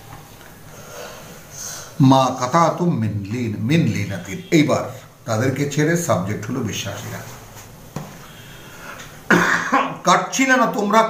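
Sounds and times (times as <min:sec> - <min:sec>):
man speaking: 0:02.0 - 0:07.4, 0:09.7 - 0:11.0
man coughing: 0:09.3 - 0:10.1.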